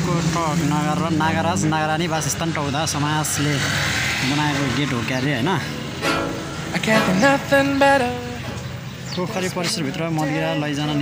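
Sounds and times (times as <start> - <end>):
low accompaniment: 6.0 - 9.2.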